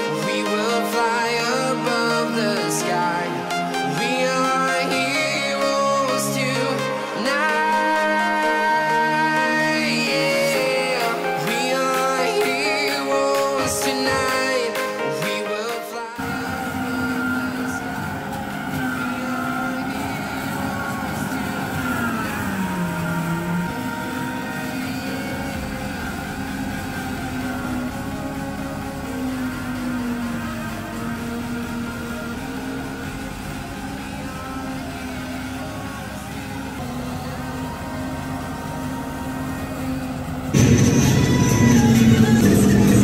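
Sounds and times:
tractor engine under load: 16.2s - 43.0s.

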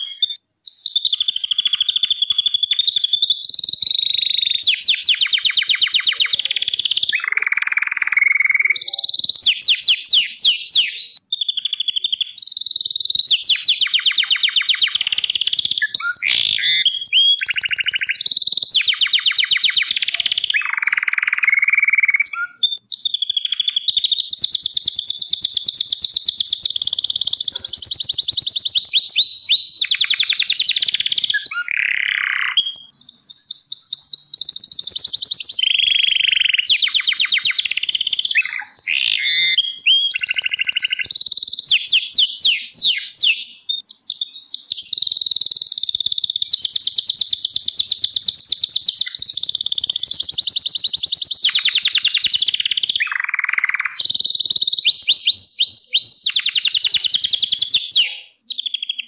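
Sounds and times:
canary singing rapid trills: 0.0s - 59.0s.

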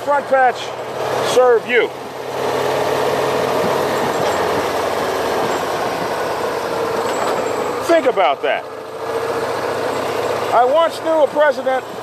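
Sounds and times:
engine and road noise: 0.0s - 12.0s.

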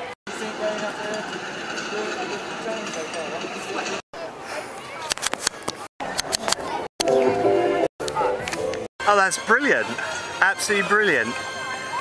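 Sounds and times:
indistinct chatter: 0.0s - 8.5s, 9.8s - 12.0s.

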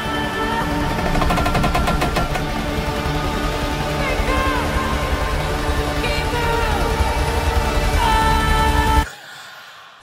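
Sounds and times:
film score: 0.0s - 10.0s
machine gun fire: 0.8s - 2.8s.

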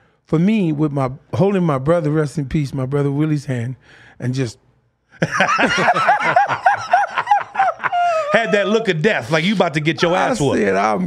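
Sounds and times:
men laughing: 5.2s - 10.6s.

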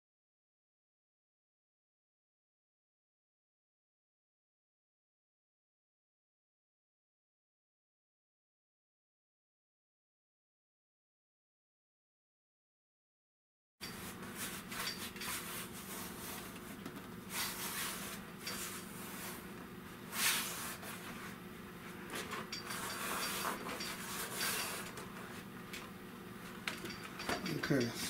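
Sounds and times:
louder brushes: 13.8s - 25.4s
steady low hum: 13.8s - 28.0s.

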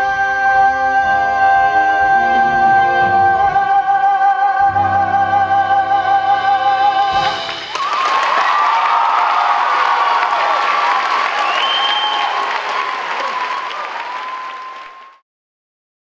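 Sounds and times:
audience applauding and cheering: 7.2s - 15.2s.

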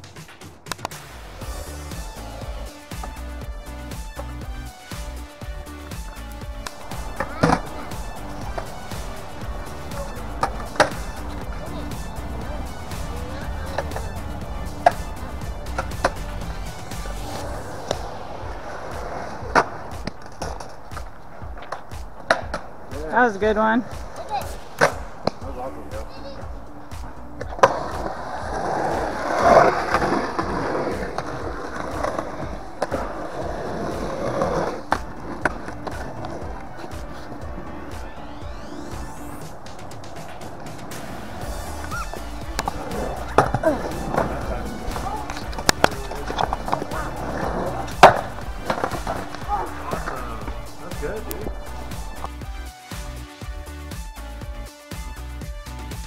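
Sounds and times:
skateboard wheels rolling on concrete: 0.0s - 56.0s
skateboard clacking on concrete: 6.6s - 23.1s, 23.8s - 38.0s, 41.8s - 52.4s.

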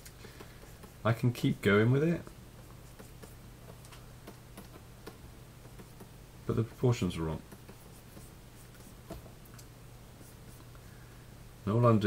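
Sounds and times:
low steady hum: 0.0s - 12.0s
stylus scratching on graphics tablet: 2.6s - 3.4s, 6.8s - 9.2s.

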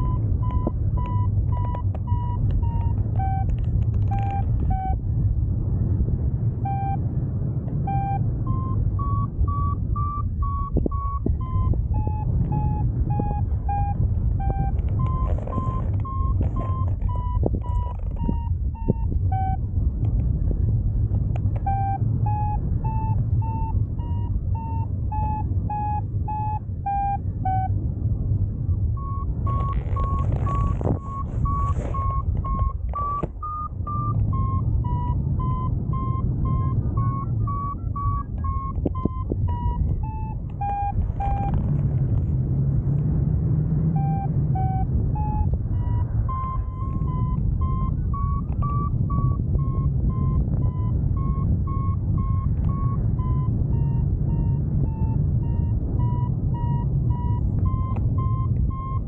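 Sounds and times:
variometer beeping in short pulses: 0.0s - 5.0s, 6.6s - 7.0s, 7.8s - 19.6s, 21.6s - 27.8s, 29.0s - 41.6s, 44.0s - 59.0s
wind rush on microphone: 0.0s - 59.0s.

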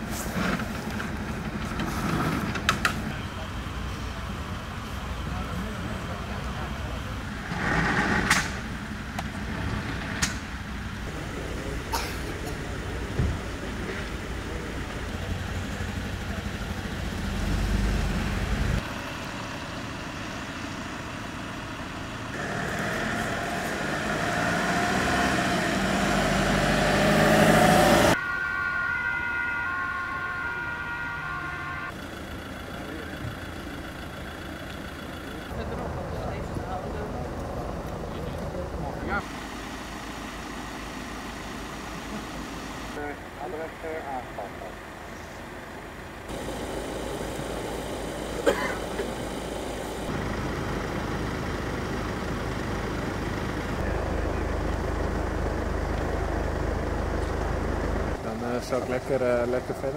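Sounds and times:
voices: 0.0s - 7.8s, 8.8s - 17.9s, 28.2s - 39.4s, 40.8s - 59.9s
vehicle engines and traffic: 0.0s - 59.9s.

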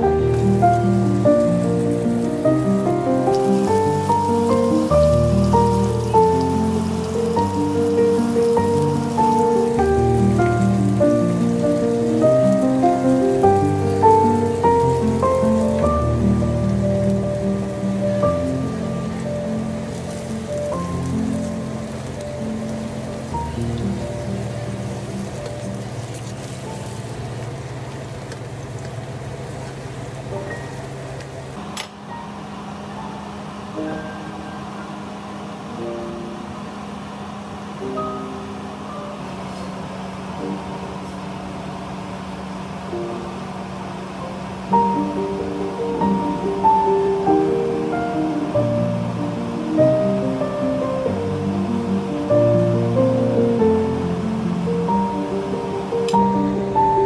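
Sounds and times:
instrumental background music: 0.0s - 27.3s, 44.7s - 57.0s
potatoes sizzling in oil: 0.0s - 31.7s.

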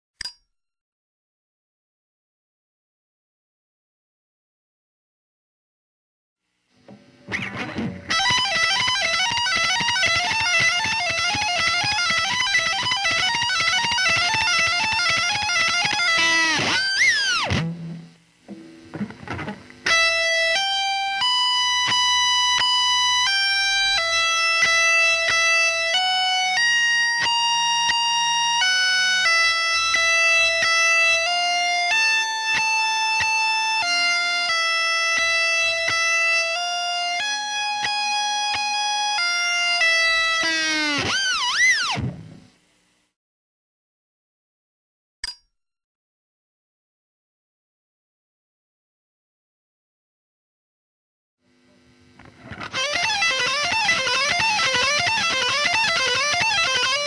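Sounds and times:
distorted electric guitar: 6.7s - 43.1s, 51.4s - 57.0s.

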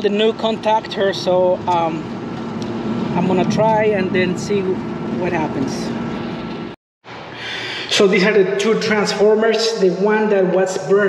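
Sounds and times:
air conditioner unit humming: 0.0s - 6.7s.

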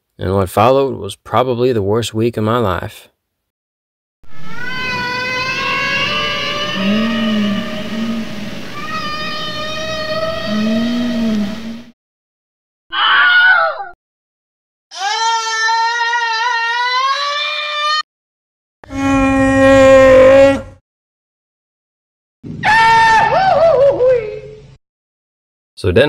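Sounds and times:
wavering high-pitched wail: 4.3s - 11.9s, 18.9s - 20.6s.

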